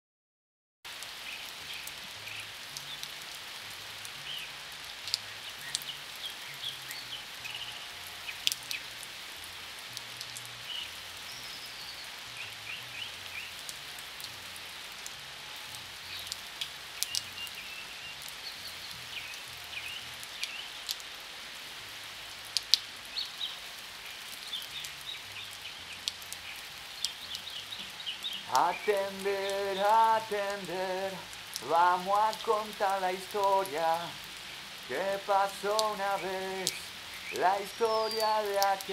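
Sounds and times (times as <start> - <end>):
sharp crackles: 24.2 - 38.9.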